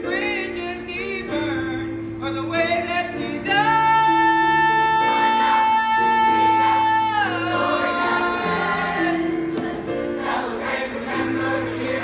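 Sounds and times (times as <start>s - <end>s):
digital piano chords: 0.0s - 12.0s
choir singing: 6.4s - 12.0s.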